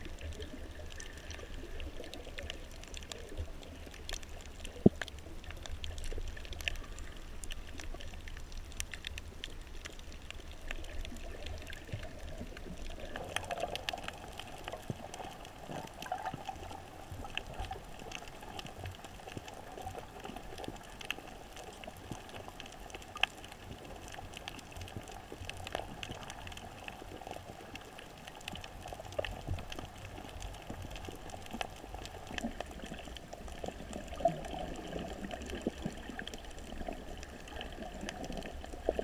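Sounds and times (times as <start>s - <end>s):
faint underwater clicks and crackles: 0.0s - 39.0s
muffled underwater noise: 0.0s - 39.0s.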